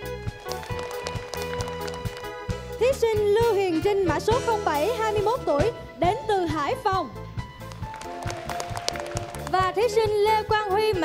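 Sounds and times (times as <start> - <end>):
instrumental music with steady beat: 0.0 - 3.5, 7.3 - 10.4.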